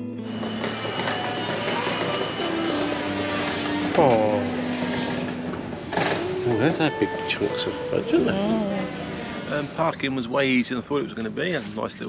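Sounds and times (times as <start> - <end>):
street background noise: 0.1 - 12.0.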